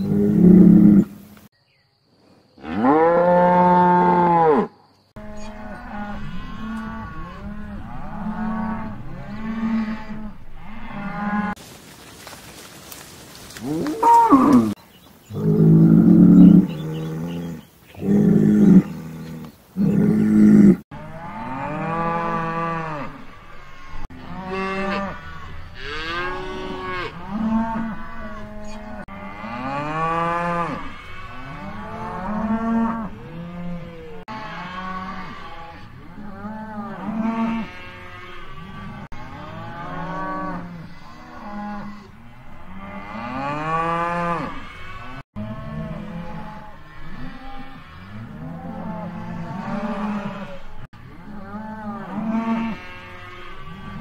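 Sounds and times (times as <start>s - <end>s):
cattle mooing: 0.0s - 1.1s, 2.6s - 11.6s, 13.6s - 54.0s.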